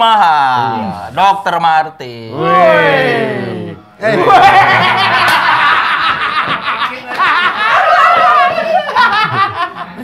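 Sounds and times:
men laughing: 4.1s - 10.0s.

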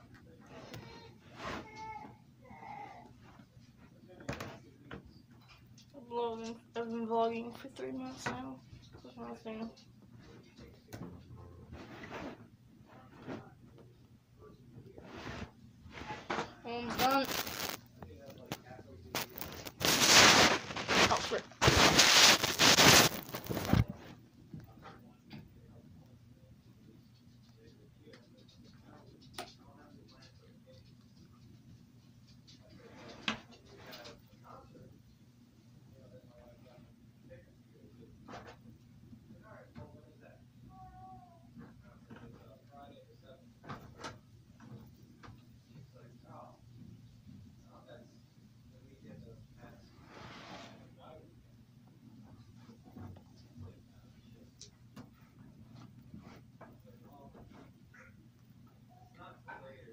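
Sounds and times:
phone handling rustling and scraping: 17.0s - 17.8s, 19.2s - 24.0s.

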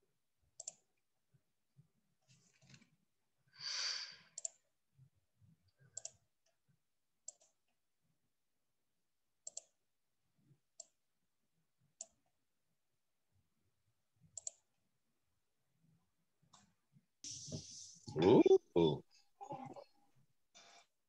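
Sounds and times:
computer mouse clicks: 0.6s - 0.9s, 4.4s - 4.6s, 5.8s - 6.6s, 7.2s - 7.6s, 9.4s - 9.8s, 10.7s - 11.0s, 12.0s - 12.3s, 14.3s - 14.7s.

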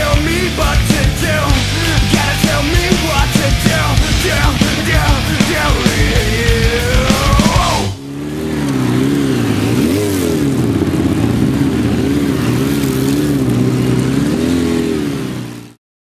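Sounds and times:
motorcycle engine revving: 0.0s - 15.8s.

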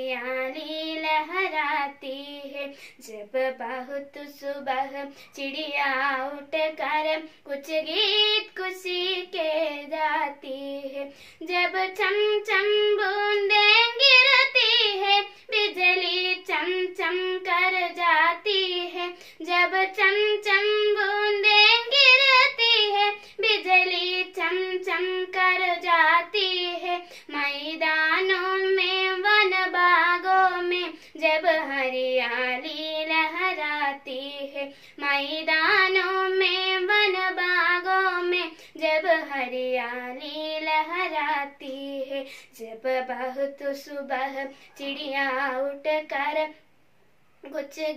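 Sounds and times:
girl singing unaccompanied: 0.0s - 46.7s, 47.4s - 47.9s.

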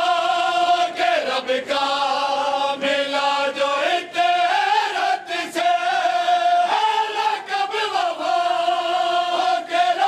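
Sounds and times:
men singing lament in unison: 0.0s - 10.0s.

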